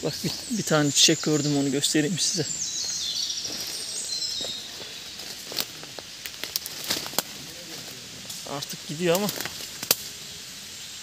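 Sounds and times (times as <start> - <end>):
footsteps through undergrowth: 0.0 - 10.2
high thin birdsong: 0.0 - 11.0
soft crackles: 2.4 - 10.2.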